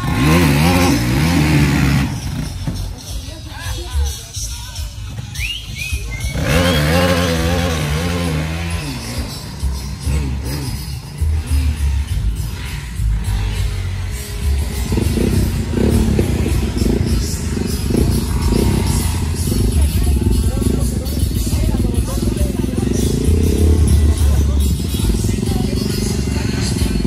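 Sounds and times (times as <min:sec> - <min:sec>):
music playing: 0:00.0 - 0:27.0
quad engine: 0:00.0 - 0:27.0.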